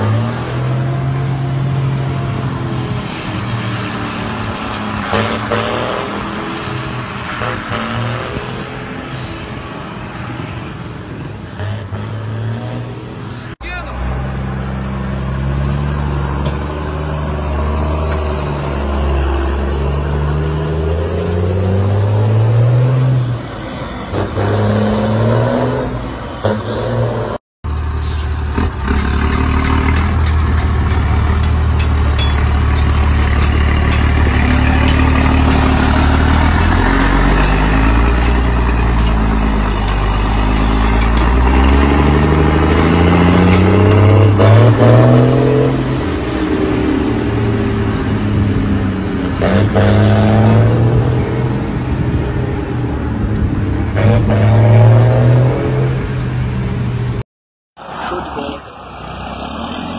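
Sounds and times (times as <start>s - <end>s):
diesel truck engine accelerating: 0.0s - 57.2s.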